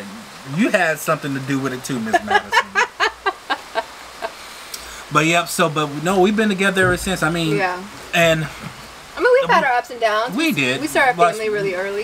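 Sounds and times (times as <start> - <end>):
faint steady hiss: 0.0 - 12.0
woman laughing: 2.0 - 4.4.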